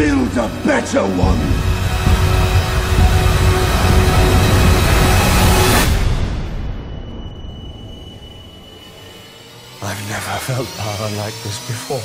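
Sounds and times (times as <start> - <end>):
deep rumble: 0.0 - 9.8
trailer score with held tones: 0.0 - 12.0.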